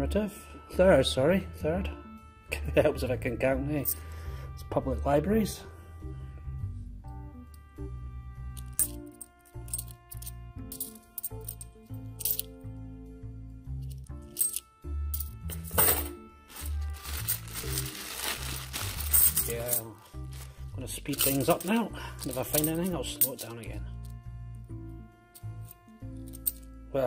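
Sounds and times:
background music with bass line: 0.0s - 27.0s
coins jingling together: 8.6s - 12.5s, 14.3s - 24.2s, 25.3s - 26.7s
coins clinking on a towel: 8.6s - 12.6s, 13.8s - 24.2s, 25.2s - 26.7s.

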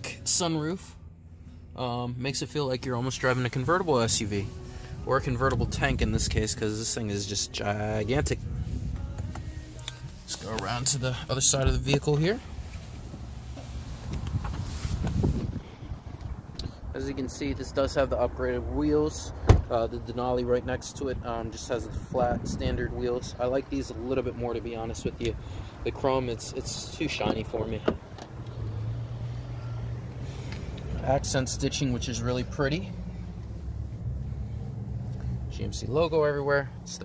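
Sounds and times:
vehicle engine idling: 0.0s - 37.0s
shuffling footsteps: 8.5s - 15.6s
wind rumbling on microphone: 14.0s - 16.9s.

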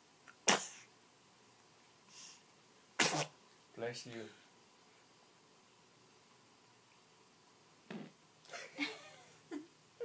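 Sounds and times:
baby sneezing: 0.4s - 0.9s, 3.0s - 3.4s
adult voice speaking: 3.8s - 4.4s.

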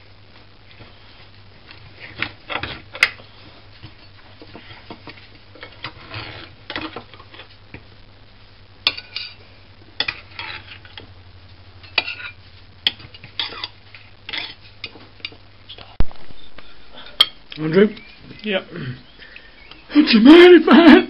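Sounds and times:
low steady hum: 0.0s - 21.0s
knife scraping pie dish: 5.6s - 7.0s, 10.0s - 10.9s, 11.9s - 14.6s.

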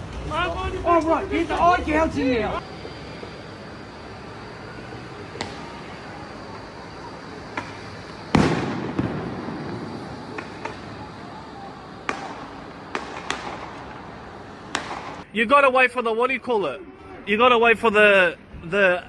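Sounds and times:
distant background noise: 0.0s - 19.0s
sharp echoing bangs: 7.5s - 11.2s, 12.0s - 15.3s.

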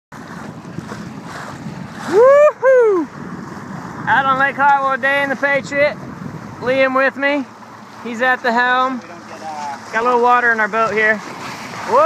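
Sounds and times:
choppy lake water: 0.1s - 12.0s
wind buffeting microphone: 0.1s - 12.0s.

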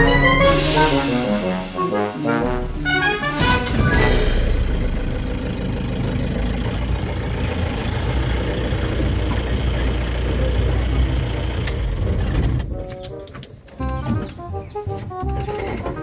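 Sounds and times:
vehicle engine idling: 2.5s - 12.8s.

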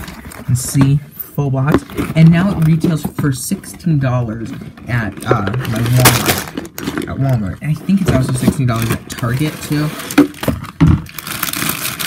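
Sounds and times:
crinkling plastic rustle: 4.4s - 12.0s.

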